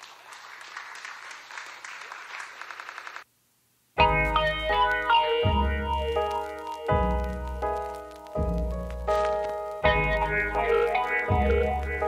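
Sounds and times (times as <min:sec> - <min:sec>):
applause: 0:00.0 - 0:03.3.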